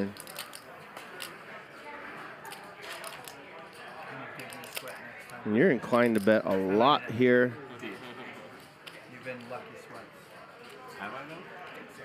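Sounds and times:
faint background talk: 0:00.0 - 0:12.0.

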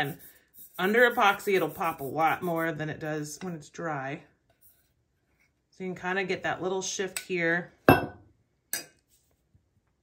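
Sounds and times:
metal tumbler knock: 0:07.9 - 0:08.2.

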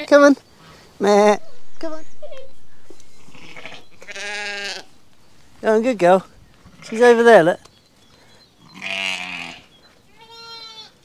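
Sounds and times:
sheep bleating: 0:03.3 - 0:04.9, 0:08.7 - 0:11.0.

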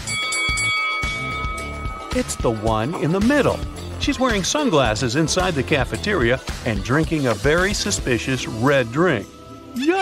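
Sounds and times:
bright bell-like chime: 0:00.0 - 0:05.8
background music: 0:00.0 - 0:10.0.

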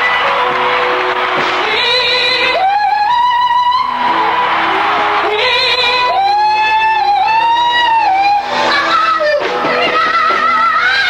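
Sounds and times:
woman singing: 0:00.0 - 0:04.4, 0:05.2 - 0:11.0
band accompaniment: 0:00.0 - 0:11.0.

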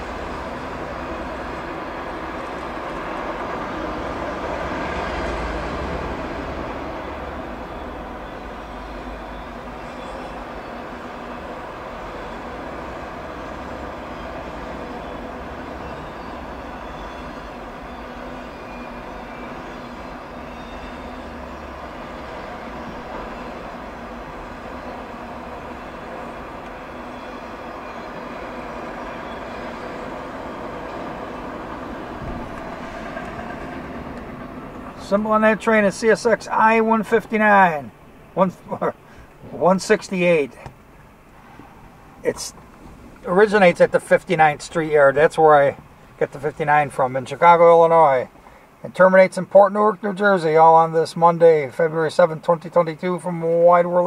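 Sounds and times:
freight train rolling past: 0:00.0 - 0:49.2.

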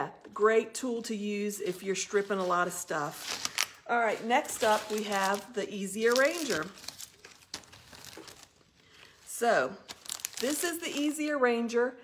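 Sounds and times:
rustling and crinkling: 0:01.5 - 0:11.2.

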